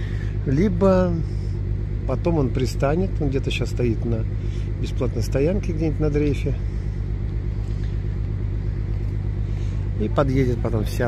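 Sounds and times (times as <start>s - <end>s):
low engine rumble: 0.0s - 11.0s.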